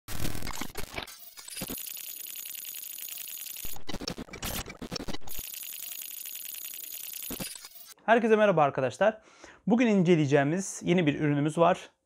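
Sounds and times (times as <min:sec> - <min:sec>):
glitch static crackle: 0:00.1 - 0:08.0.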